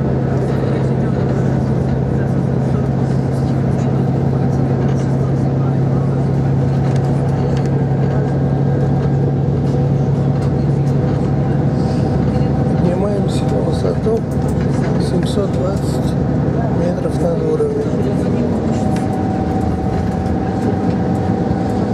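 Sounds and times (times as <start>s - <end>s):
bus engine and road noise: 0.0s - 21.9s.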